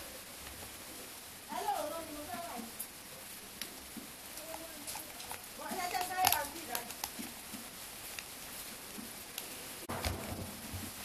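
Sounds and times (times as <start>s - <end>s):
person speaking: 4.3s - 7.0s.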